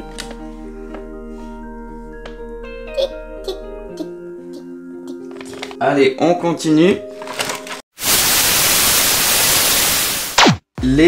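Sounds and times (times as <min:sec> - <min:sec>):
loud static hiss: 0:08.0 - 0:10.6.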